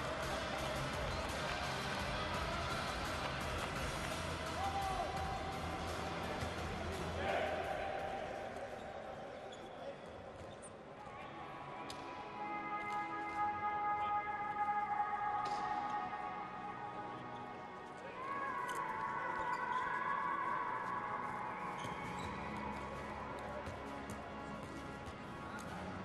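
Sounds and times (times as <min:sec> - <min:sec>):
music over loudspeakers: 0:00.0 - 0:07.8
voices in a hall: 0:00.0 - 0:26.0.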